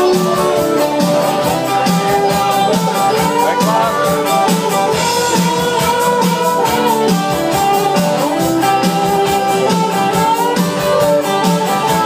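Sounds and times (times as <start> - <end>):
drum kit cymbal beat: 0.0 - 12.0
electric guitar with bending notes: 0.0 - 12.0.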